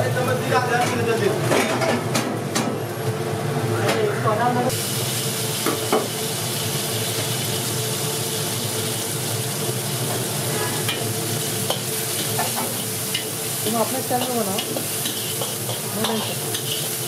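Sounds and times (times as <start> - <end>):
vegetables sizzling in a wok: 0.0 - 17.0.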